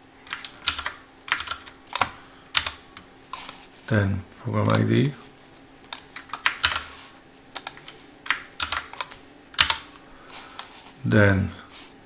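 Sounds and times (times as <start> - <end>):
faint steady low hum: 0.0 - 12.0
computer keyboard typing: 0.2 - 3.6, 5.9 - 9.9.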